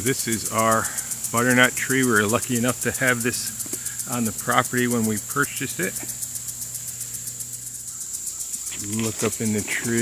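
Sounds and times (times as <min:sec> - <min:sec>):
insects trilling: 0:00.0 - 0:10.0
steady low hum: 0:00.0 - 0:10.0.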